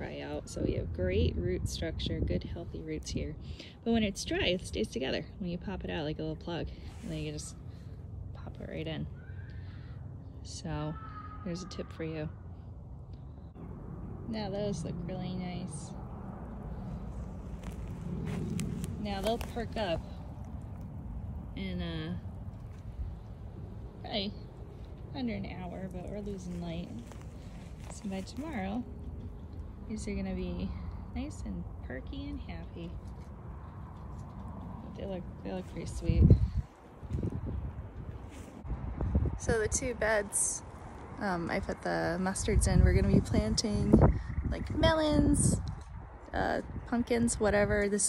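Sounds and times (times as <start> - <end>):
wind buffeting microphone: 0.0 - 9.3, 13.4 - 48.0.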